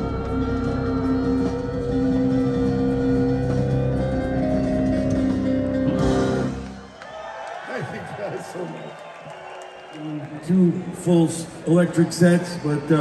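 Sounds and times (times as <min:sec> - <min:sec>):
live rock band playing: 0:00.0 - 0:06.8.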